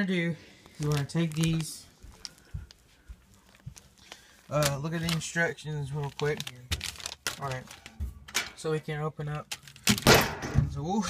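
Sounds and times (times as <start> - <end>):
footsteps on hard floor: 2.0 - 3.9.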